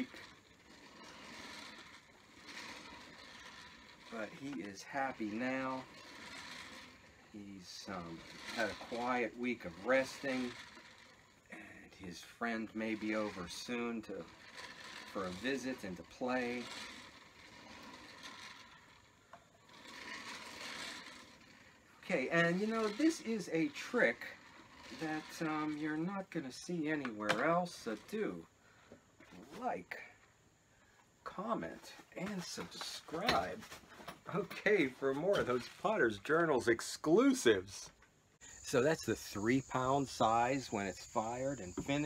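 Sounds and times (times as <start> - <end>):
rib scraping clay: 0.0 - 28.5, 31.2 - 37.6, 38.4 - 42.0.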